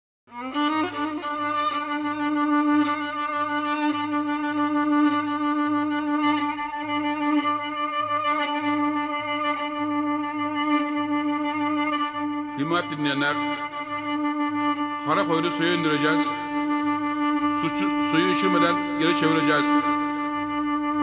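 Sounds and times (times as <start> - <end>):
violin holding long note: 0.3 - 21.0.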